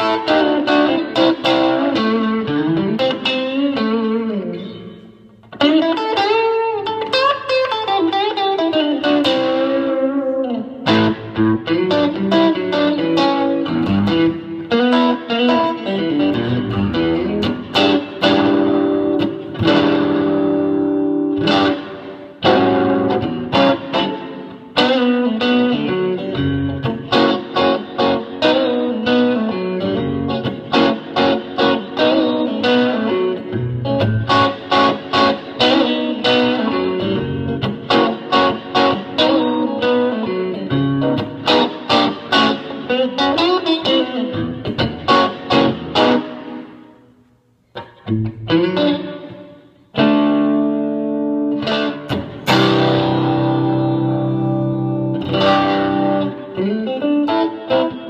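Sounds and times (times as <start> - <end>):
electric guitar through tube amp: 0.0 - 58.0.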